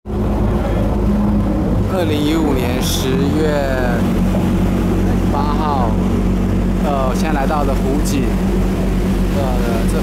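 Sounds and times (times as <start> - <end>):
boat engine droning: 0.0 - 10.0.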